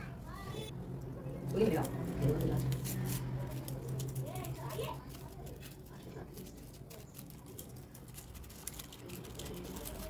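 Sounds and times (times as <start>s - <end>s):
plastic strip crinkling and scratching: 1.5s - 10.0s.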